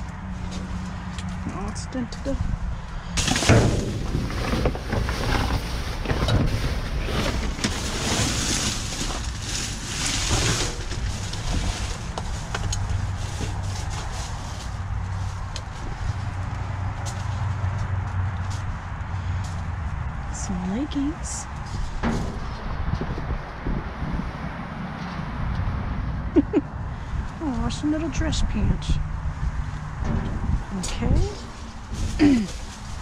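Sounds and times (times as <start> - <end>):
plastic bags crinkling and rustling: 3.2 - 16.2, 31.2 - 33.0.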